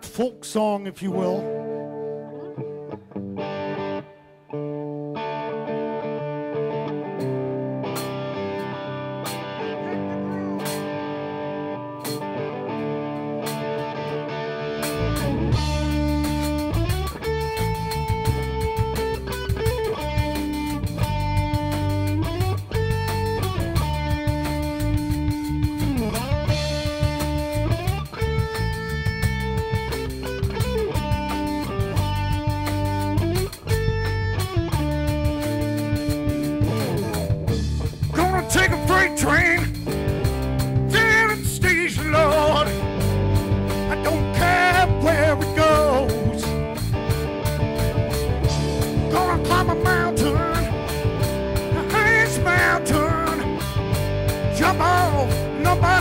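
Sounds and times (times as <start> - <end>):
bass guitar: 0.0 - 56.0
guitar playing: 0.0 - 56.0
drums: 6.9 - 56.0.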